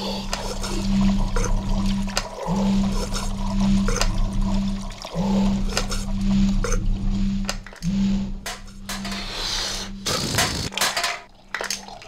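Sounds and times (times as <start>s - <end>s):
watery noise: 0.0s - 7.8s
machinery low hum: 0.0s - 10.7s.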